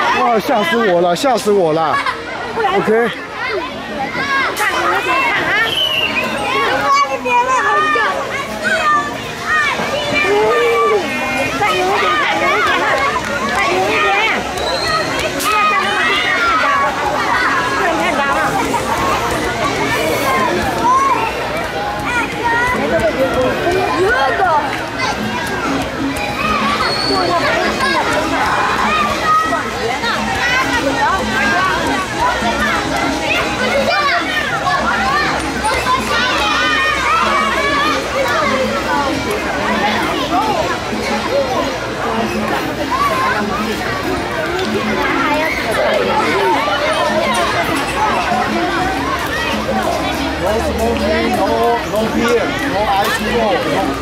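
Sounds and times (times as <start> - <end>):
children shouting at play: 0.0 - 54.0.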